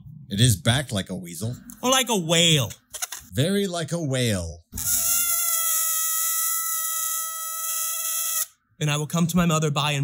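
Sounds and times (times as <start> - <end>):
balloon squealing with air hiss: 4.8 - 8.6.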